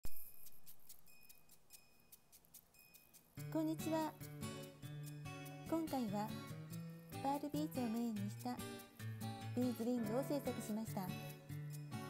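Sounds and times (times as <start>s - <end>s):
light even ticking: 0.1s - 10.8s.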